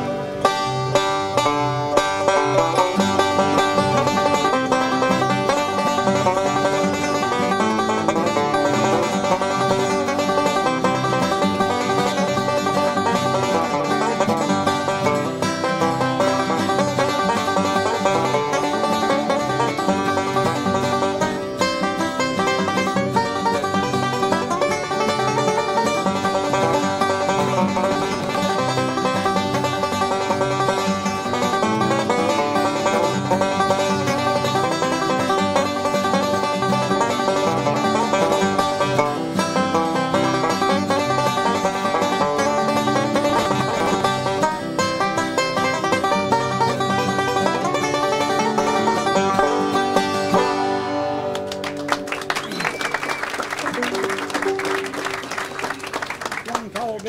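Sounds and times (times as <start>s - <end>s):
banjo playing bluegrass tune: 0.0s - 56.7s.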